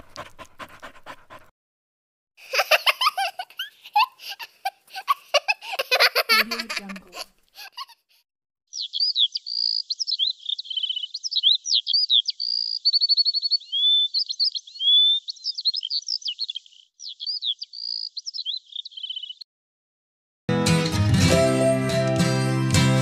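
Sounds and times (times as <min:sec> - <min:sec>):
songbird song: 0:08.7 - 0:19.4.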